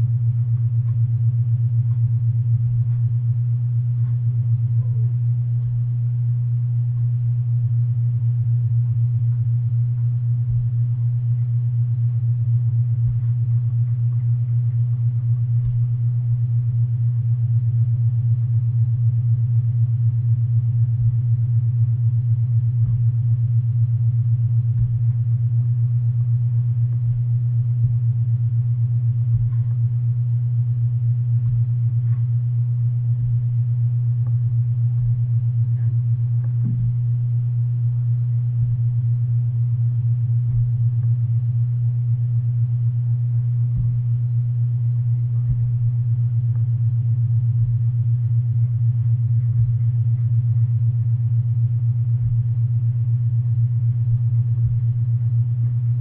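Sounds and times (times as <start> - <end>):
loud low-pitched hum: 0.0 - 56.0.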